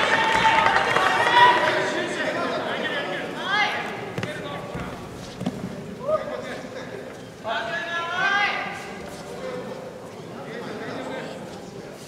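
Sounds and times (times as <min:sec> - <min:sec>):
voices in a large hall: 0:00.0 - 0:12.0.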